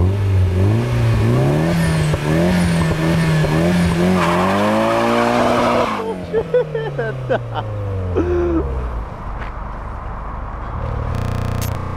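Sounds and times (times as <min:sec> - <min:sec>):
distant car engine rumbling: 0:00.0 - 0:11.9.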